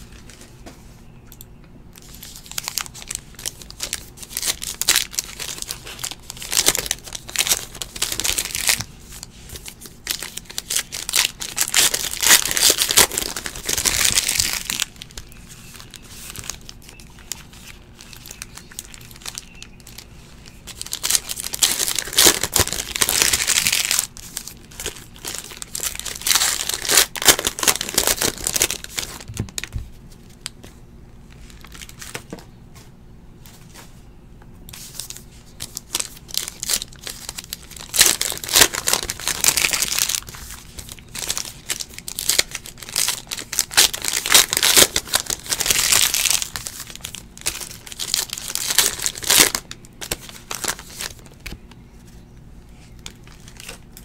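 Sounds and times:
card pack wrappers tearing and crinkling: 2.0s - 30.6s, 31.4s - 32.4s, 34.7s - 52.1s, 52.9s - 54.0s.

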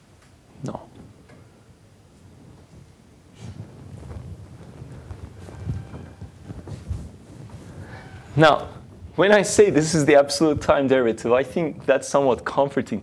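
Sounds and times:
soft low uneven thumps: 0.9s - 12.6s
rustling: 1.0s - 13.0s.

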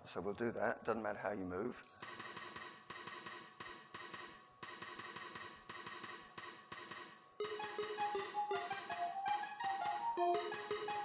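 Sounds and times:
synthesized drum pattern: 2.1s - 11.0s
synthesizer melody notes: 7.4s - 11.0s.

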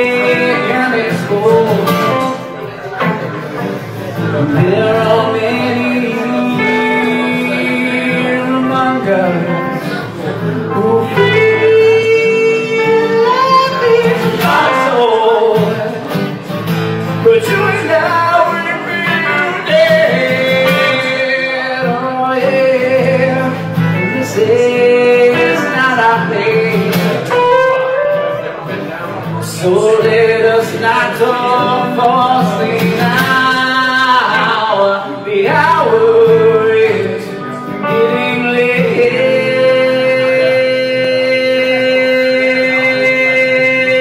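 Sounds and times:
electric guitar lead sliding and bending: 0.0s - 35.2s
strummed acoustic guitar: 0.0s - 44.0s.

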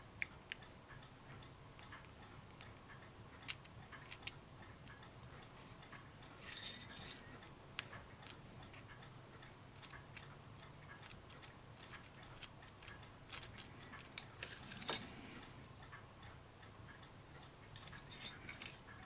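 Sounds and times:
plastic parts and tweezers clicking: 3.4s - 4.4s, 9.7s - 15.1s, 17.8s - 19.0s.

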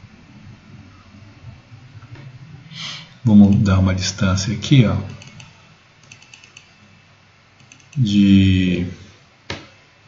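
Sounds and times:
computer keyboard and mouse clicking: 3.4s - 3.7s, 5.1s - 6.7s, 7.6s - 8.1s.

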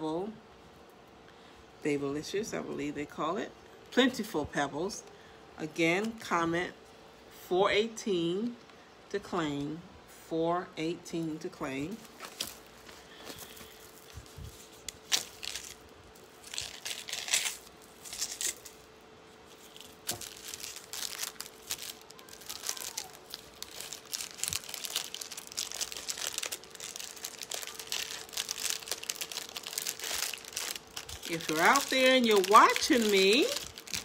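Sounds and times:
faint steady hum: 0.0s - 34.0s
crinkling and rustling: 11.9s - 34.0s.

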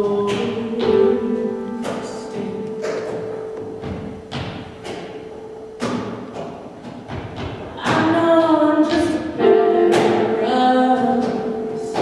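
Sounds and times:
sharp knocks: 1.8s - 9.2s.

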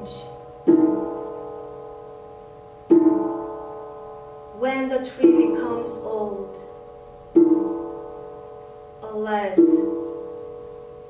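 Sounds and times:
plucked string ringing: 0.0s - 11.0s.

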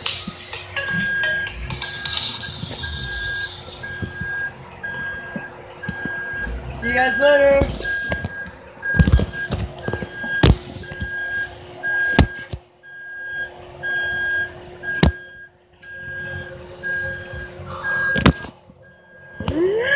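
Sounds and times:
car warning chime beeping: 0.0s - 19.7s.

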